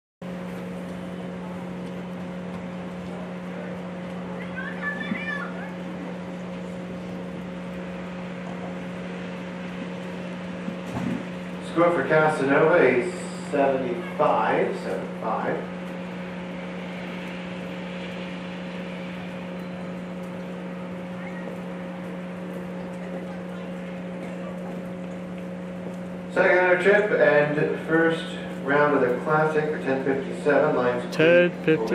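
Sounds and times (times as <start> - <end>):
steady low hum: 30.3 - 31.9.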